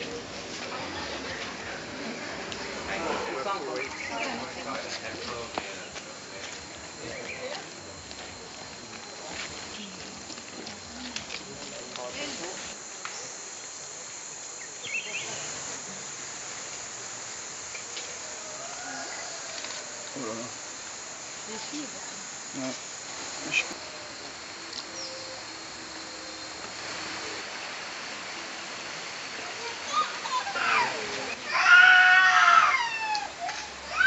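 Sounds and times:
faint voices: 0.0 - 34.0
forest insects droning: 0.0 - 34.0.

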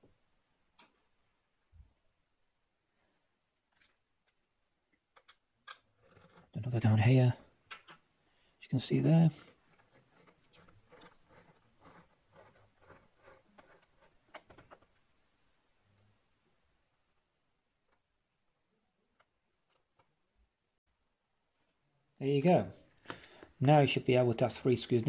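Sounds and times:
screwdriver ticking and scraping: 9.7 - 14.8.

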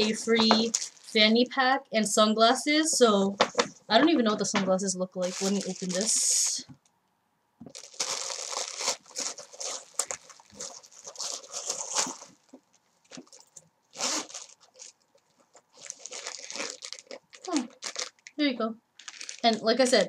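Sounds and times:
plastic packaging crinkling: 0.0 - 1.3, 5.2 - 6.6, 7.7 - 18.4, 19.0 - 20.0.

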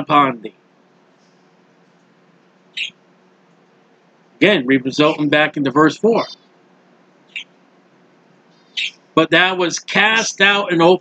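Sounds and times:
low room hiss: 0.0 - 11.0.

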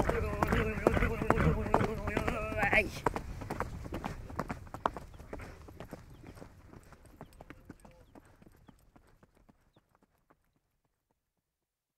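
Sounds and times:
horse hooves clip-clopping: 0.0 - 11.3.

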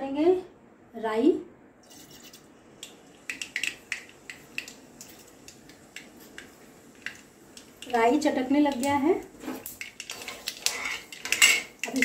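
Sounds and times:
mustard seeds popping in hot oil: 2.8 - 12.0.

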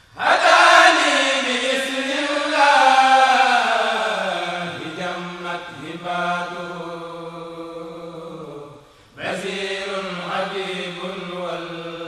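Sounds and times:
choir chanting: 0.0 - 12.0.

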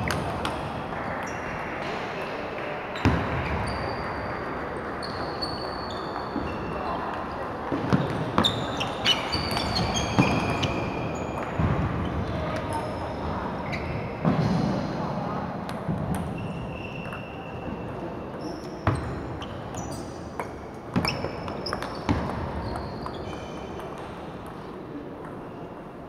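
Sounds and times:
hubbub of voices: 0.0 - 26.0
shoes squeaking on wooden floor: 7.9 - 11.4.

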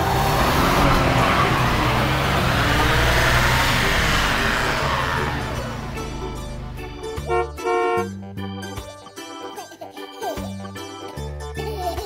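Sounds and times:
car driving past: 0.0 - 7.2.

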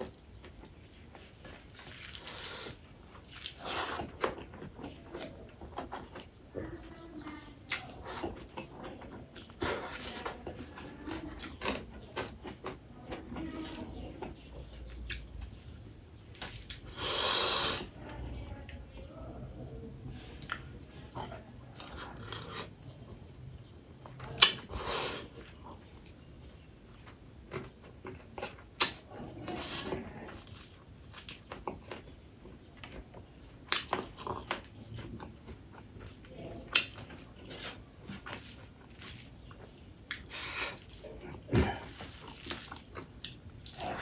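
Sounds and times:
rice squishing by hand: 0.0 - 5.0, 34.8 - 44.0
wet chewing: 0.0 - 18.8, 20.1 - 44.0.

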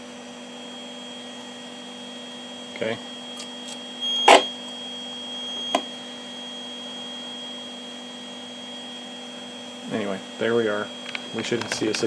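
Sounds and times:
steady high tone: 0.0 - 11.6
low mains hum: 0.0 - 12.0.

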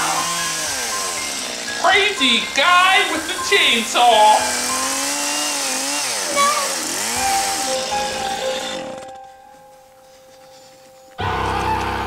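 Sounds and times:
chainsaw revving: 0.0 - 9.2
background music: 0.0 - 12.0.

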